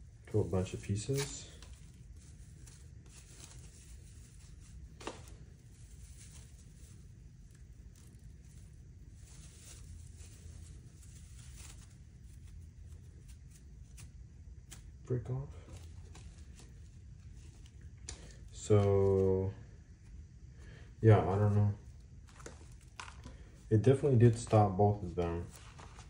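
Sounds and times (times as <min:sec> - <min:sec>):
fabric rustling and scraping: 0:00.0 - 0:19.3, 0:21.3 - 0:26.0.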